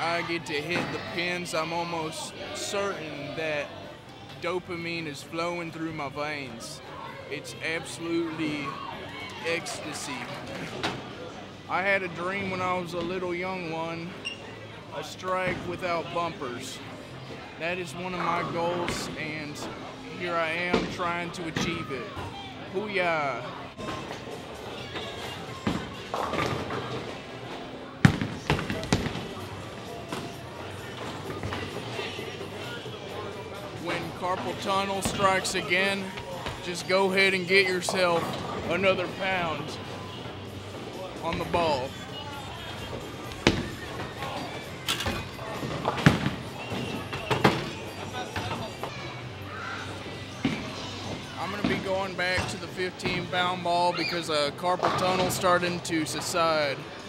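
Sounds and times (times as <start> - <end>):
bowling hall background noise: 0.0 - 57.0
chatter: 0.0 - 57.0.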